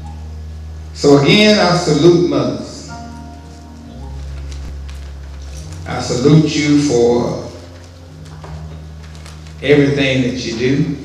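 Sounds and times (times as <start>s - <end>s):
man speaking: 1.0s - 2.9s, 5.8s - 7.6s, 9.6s - 11.0s.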